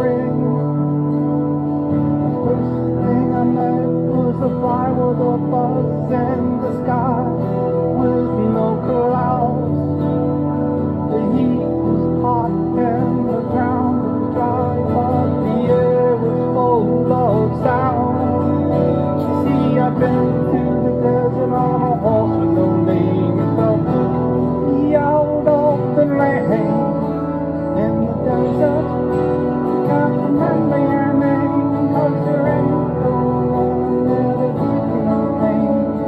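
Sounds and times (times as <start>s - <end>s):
acoustic guitar playing: 0.0s - 36.0s
low bass notes: 0.0s - 36.0s
synthesizer backing: 0.0s - 36.0s.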